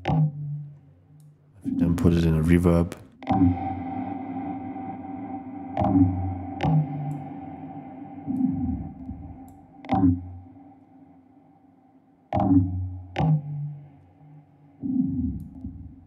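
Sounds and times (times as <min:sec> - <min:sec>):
sharp percussive electronic hits: 0:03.1 - 0:11.6
metallic ringing overtones: 0:03.4 - 0:11.9
low falling sweep: 0:03.5 - 0:11.6.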